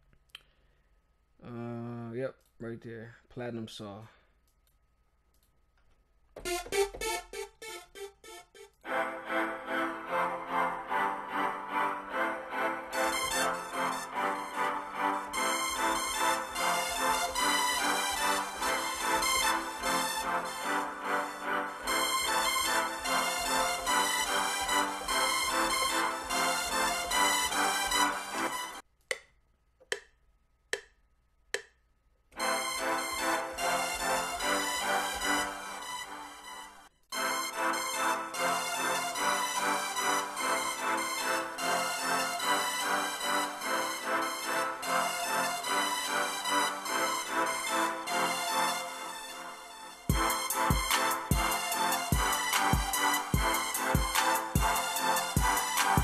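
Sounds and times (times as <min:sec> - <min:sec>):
synth and drum beat: 0:06.4 - 0:08.8, 0:50.1 - 0:56.0
sawtooth synth notes and chords: 0:06.4 - 0:28.8, 0:32.4 - 0:56.0
metronome ticks: 0:29.0 - 0:31.8.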